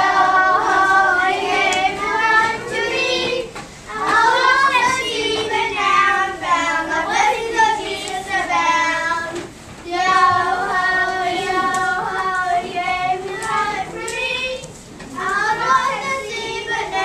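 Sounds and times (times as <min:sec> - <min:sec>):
children singing: 0:00.0 - 0:17.0.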